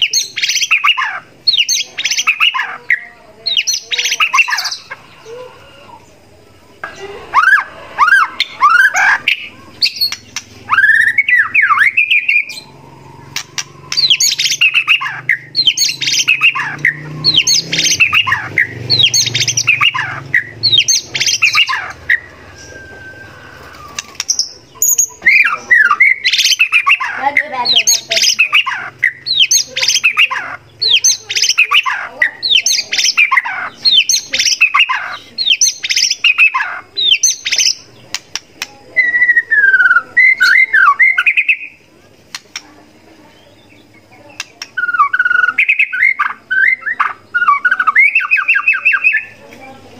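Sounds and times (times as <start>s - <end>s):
bird singing: 0.0s - 49.9s.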